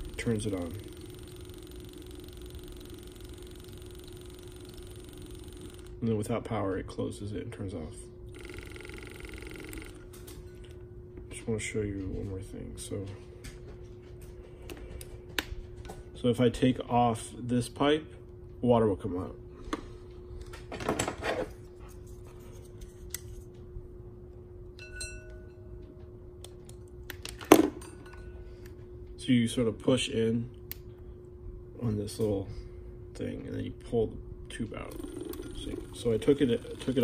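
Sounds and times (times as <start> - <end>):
water pump buzzing: 0.0 - 6.2, 8.3 - 10.1, 34.8 - 37.0
faint steady hum: 0.0 - 37.0
glass-like clink: 24.8 - 25.6.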